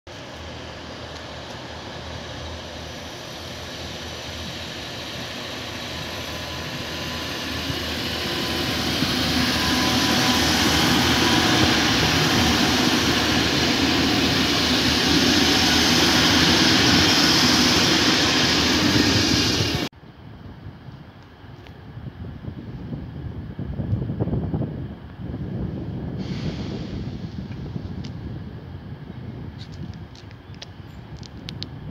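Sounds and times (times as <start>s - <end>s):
diesel locomotive rumble: 0.1s - 31.9s
rail noise: 0.1s - 31.9s.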